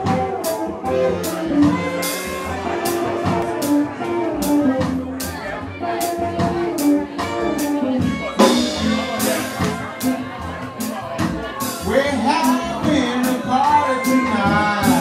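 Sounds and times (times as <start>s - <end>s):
sustained melodic notes: 0.0s - 14.9s
drum kit cymbal strokes: 8.3s - 12.0s.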